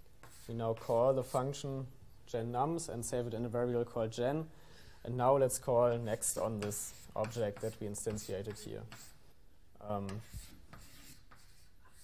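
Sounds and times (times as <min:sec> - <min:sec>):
chalk scratching on blackboard: 0:00.2 - 0:01.6, 0:06.1 - 0:09.2, 0:10.1 - 0:12.0.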